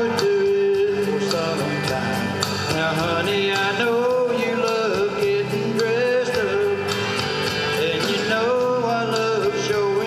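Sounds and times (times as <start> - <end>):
instrumental accompaniment: 0.0 - 10.0
man singing into microphone: 0.0 - 10.0.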